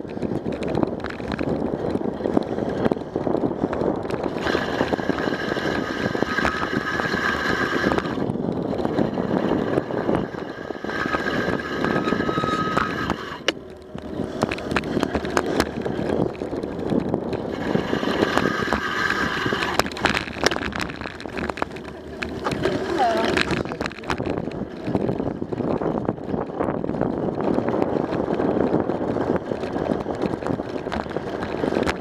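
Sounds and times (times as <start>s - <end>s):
bicycle tyres rolling on pavement: 0.0s - 32.0s
wind rushing over microphone: 0.0s - 32.0s.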